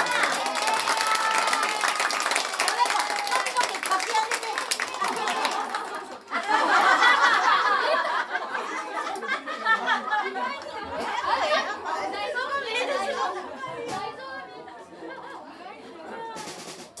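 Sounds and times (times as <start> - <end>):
crowd chatter: 0.0 - 17.0
stray drum sounds: 16.4 - 17.0.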